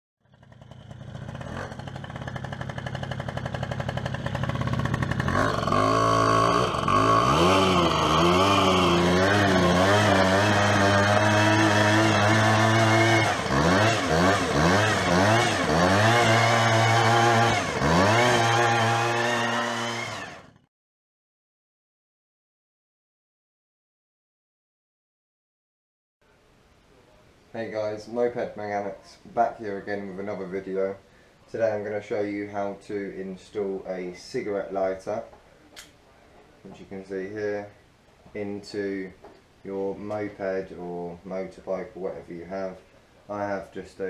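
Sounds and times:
moped engine revving: 0.2s - 20.7s.

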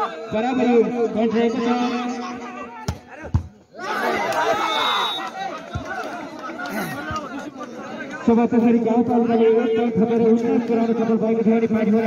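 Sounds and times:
crowd chattering: 0.0s - 12.0s.

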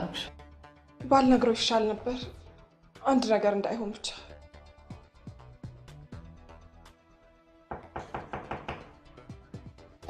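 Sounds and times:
soft background music: 0.0s - 10.0s
sharp knocks on a door: 7.7s - 9.0s.

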